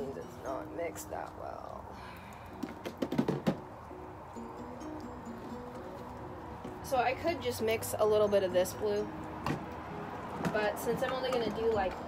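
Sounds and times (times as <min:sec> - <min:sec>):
faint slow melody: 0:03.6 - 0:12.0.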